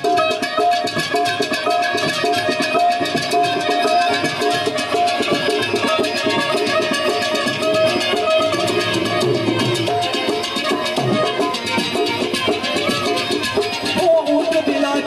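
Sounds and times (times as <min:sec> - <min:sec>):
harmonium melody: 0:00.0 - 0:15.0
tabla percussion rhythm: 0:00.0 - 0:15.0.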